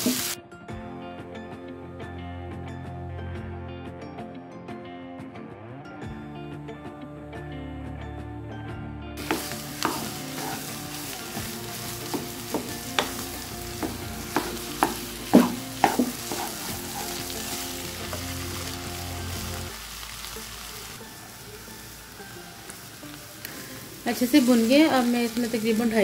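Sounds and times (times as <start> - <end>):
food sizzling in frying pan: 0.0 - 0.4, 9.2 - 26.0
spatula scraping and knocking pan: 9.2 - 18.4.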